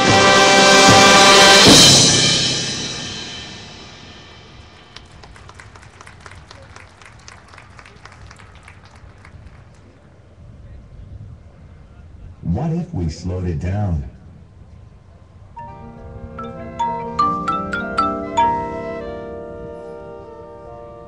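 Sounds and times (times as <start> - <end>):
cymbal crash: 0.0 - 4.9
marching band sustained chord: 0.0 - 5.6, 15.6 - 21.0.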